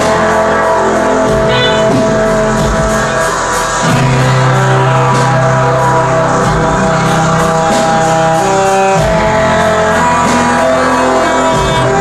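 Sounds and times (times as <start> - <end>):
drums: 0.0 - 12.0
guitar: 0.0 - 12.0
saxophone: 0.0 - 12.0
low bass note: 0.8 - 10.2.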